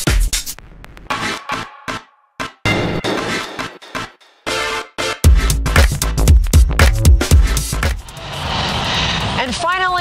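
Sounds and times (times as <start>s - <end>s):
rushing whoosh noise: 7.7s - 10.0s
woman speaking: 9.4s - 10.0s.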